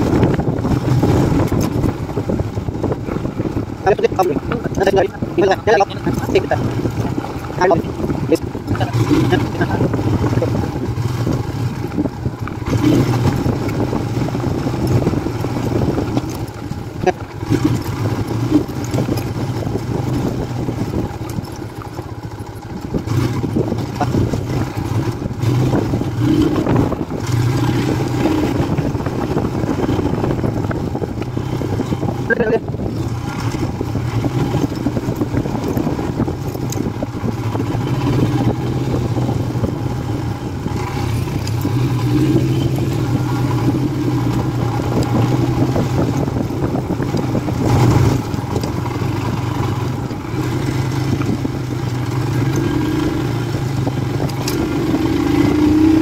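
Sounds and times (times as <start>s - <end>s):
motorcycle engine running: 0.0s - 56.0s
tyre noise on dirt track: 0.0s - 56.0s.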